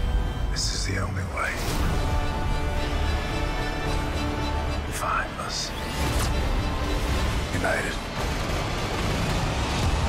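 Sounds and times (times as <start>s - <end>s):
trailer music: 0.0s - 10.0s.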